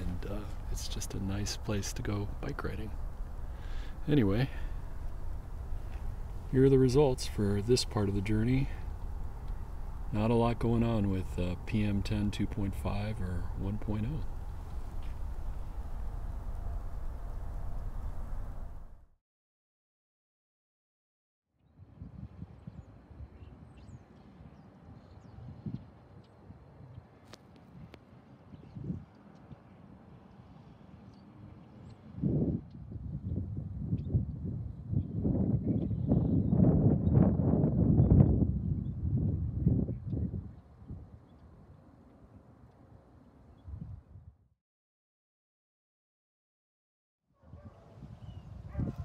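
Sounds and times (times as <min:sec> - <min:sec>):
wind buffeting microphone: 0:00.0 - 0:19.0, 0:21.7 - 0:29.6, 0:31.8 - 0:41.8, 0:43.6 - 0:44.4, 0:47.4 - 0:49.0.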